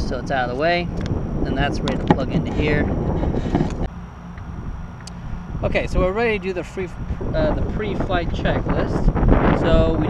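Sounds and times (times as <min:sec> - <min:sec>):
faint low hum: 0:00.0 - 0:10.0
wind rumbling on microphone: 0:00.0 - 0:10.0.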